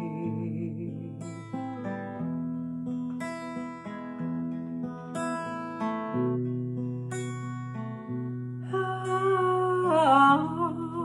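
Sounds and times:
woman singing: 0.0 - 1.5, 8.6 - 11.0
acoustic guitar strumming: 0.0 - 11.0.

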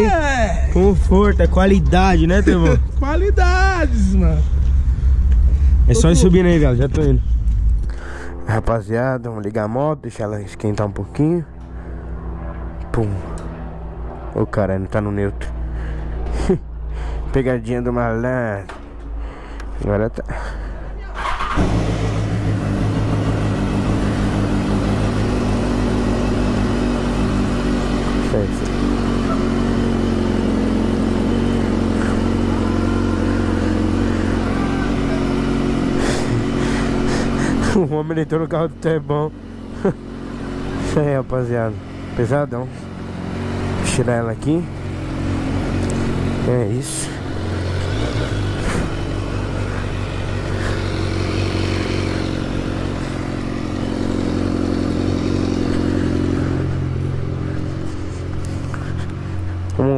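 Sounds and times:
motorcycle engine idling: 20.7 - 59.9.

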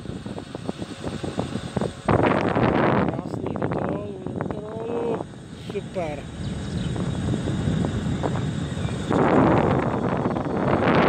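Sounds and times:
scooter tyres rumbling on asphalt: 0.0 - 11.0
wind on microphone: 0.0 - 11.0.

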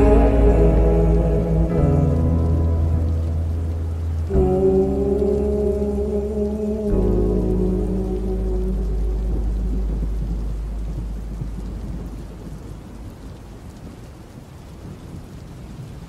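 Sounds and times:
deep low rumble: 0.0 - 14.0
slowed song low notes: 0.0 - 14.6
steady rain: 0.0 - 16.0.

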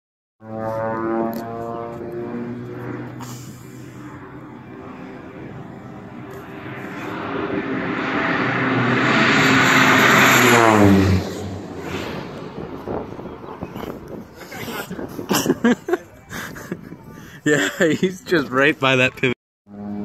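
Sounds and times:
airplane engine and propeller droning: 0.4 - 20.0.

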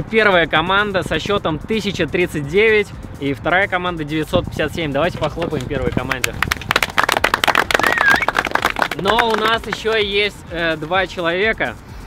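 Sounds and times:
people applauding: 5.5 - 10.1.

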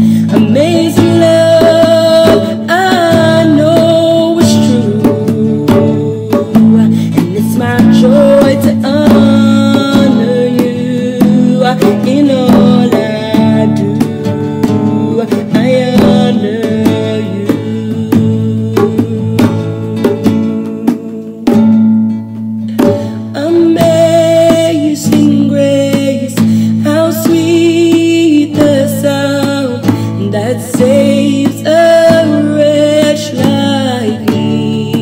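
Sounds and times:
person singing: 0.0 - 22.0, 22.7 - 35.0
drums: 0.0 - 35.0
guitar: 0.0 - 35.0.

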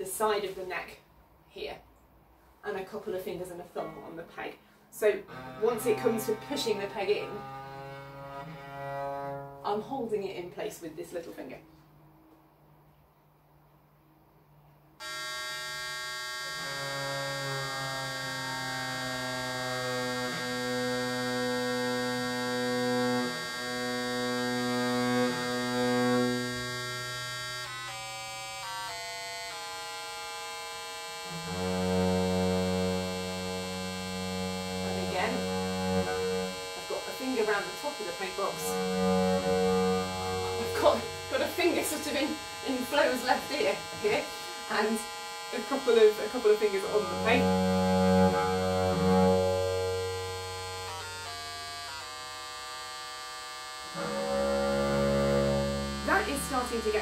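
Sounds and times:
bowed viol string: 2.7 - 11.4, 15.0 - 53.1, 53.7 - 57.0
electronic reference drone: 5.2 - 9.6, 15.0 - 57.0.

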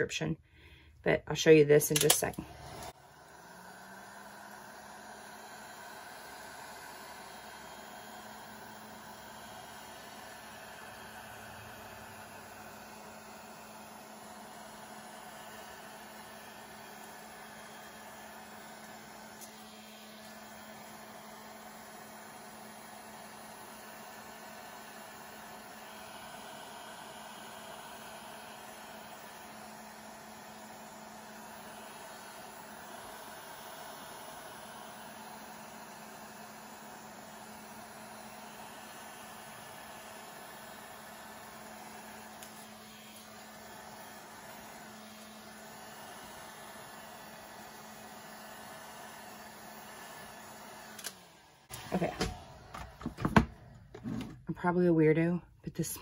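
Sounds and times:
heat gun blowing air: 1.5 - 54.8.

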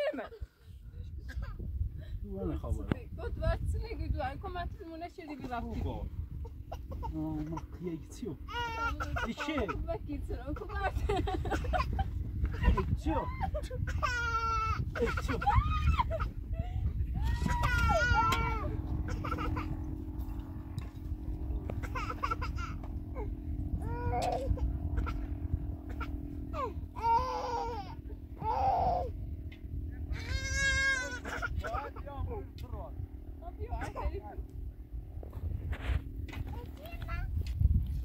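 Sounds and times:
steady low rumble: 0.2 - 38.0
people crying and screaming: 17.1 - 18.6.

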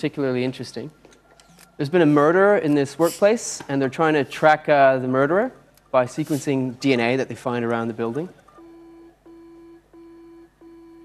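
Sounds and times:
faint electronic beeping: 8.4 - 11.0.

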